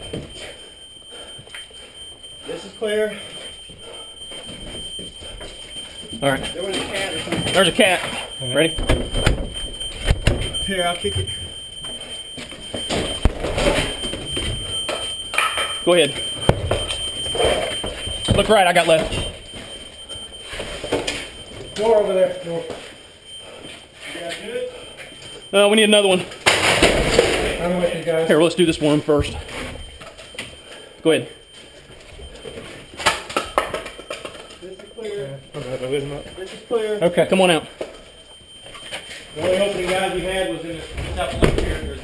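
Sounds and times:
steady high-pitched tone: 0:00.0 - 0:42.0.

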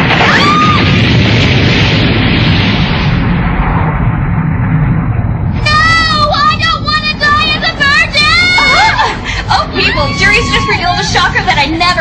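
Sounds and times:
stone structure collapsing rumble: 0:00.0 - 0:12.0.

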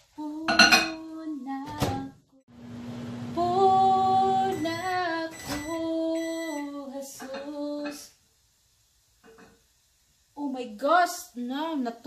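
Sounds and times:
woman singing unaccompanied: 0:00.0 - 0:02.4, 0:03.3 - 0:08.2, 0:10.4 - 0:12.0.

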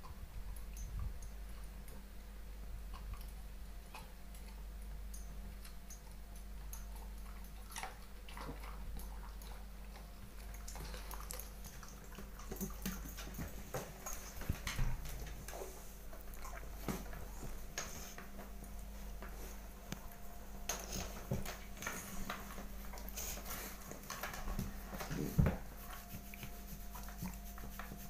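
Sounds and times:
steady low hum: 0:00.0 - 0:28.0
dog eating: 0:02.9 - 0:18.8.

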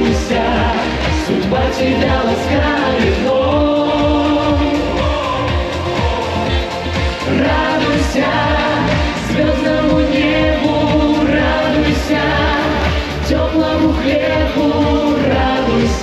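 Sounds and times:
backing track with steady beat: 0:00.0 - 0:16.0
voices singing held notes: 0:00.0 - 0:16.0.

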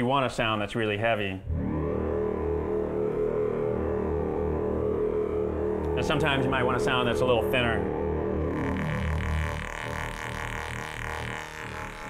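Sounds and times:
low droning synthesizer tone: 0:01.4 - 0:12.0.

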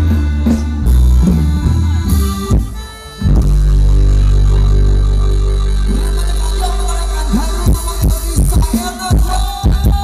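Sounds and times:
held low bass note: 0:00.0 - 0:08.0
live band music over a pa: 0:00.0 - 0:10.0.

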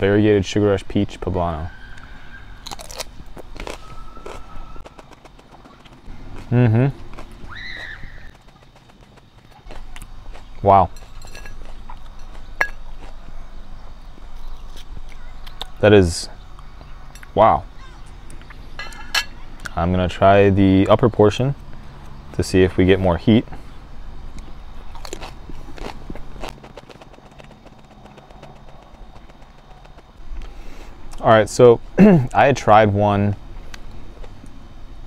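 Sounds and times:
outdoor background noise: 0:00.0 - 0:35.0
crisp crunches of biting: 0:02.6 - 0:13.3, 0:24.3 - 0:31.2
person chewing: 0:02.6 - 0:13.5, 0:24.3 - 0:31.2.

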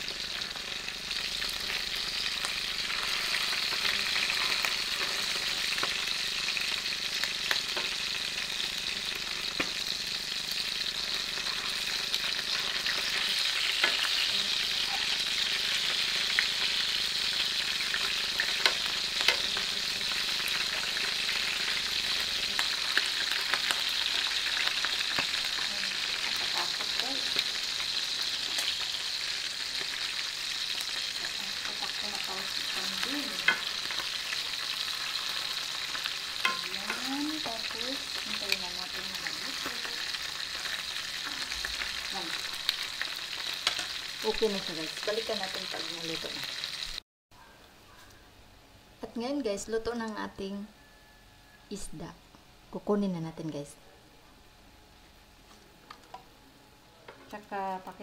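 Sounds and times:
fish sizzling in oil: 0:00.0 - 0:47.0
tongs clicking against pan: 0:18.5 - 0:19.7, 0:33.4 - 0:34.1, 0:35.9 - 0:38.7.

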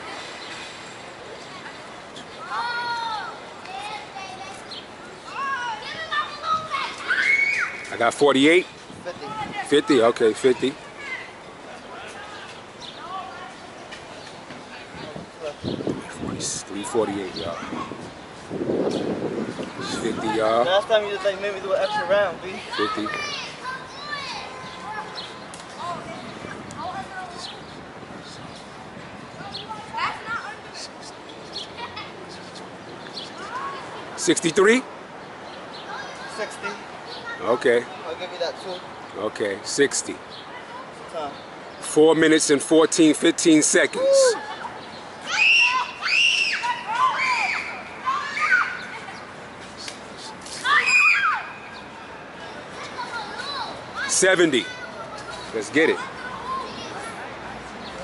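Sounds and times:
steady outdoor hum: 0:00.0 - 0:58.0
children calling out: 0:02.3 - 0:08.0, 0:22.0 - 0:27.6, 0:43.9 - 0:49.3, 0:50.4 - 0:57.6.

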